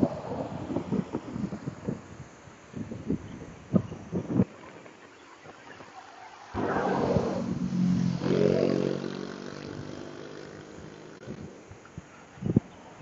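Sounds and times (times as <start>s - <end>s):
car passing close by: 6.3s - 10.6s.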